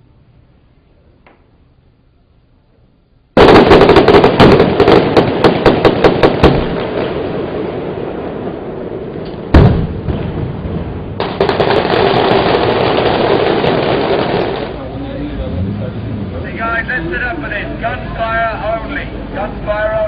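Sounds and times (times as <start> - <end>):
gunfire-like pops: 3.4 - 6.9, 9.3 - 10.2
loud explosion: 3.4 - 14.8.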